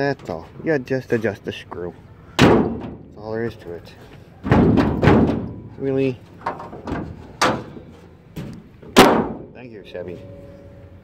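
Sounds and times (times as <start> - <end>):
metal hood clunking shut: 2.4 - 3.1, 4.4 - 9.6.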